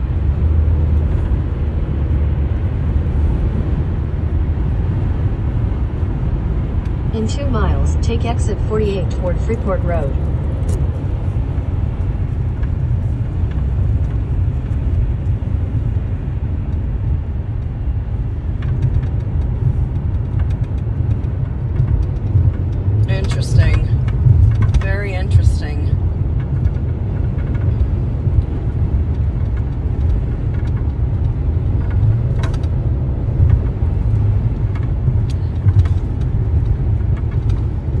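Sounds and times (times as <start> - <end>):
road and engine rumble in car: 0.0 - 38.0.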